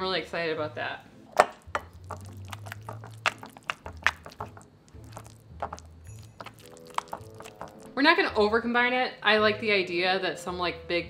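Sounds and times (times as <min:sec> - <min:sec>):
spoon stirring soft food: 0:01.3 - 0:08.1
spoon tapping glass bowl: 0:01.4 - 0:04.6, 0:05.6 - 0:07.8.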